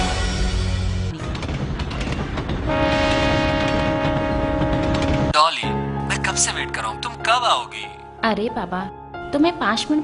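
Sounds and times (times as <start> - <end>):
train wheels rumbling and clattering: 1.2 - 5.4
train horn chord: 2.7 - 5.8.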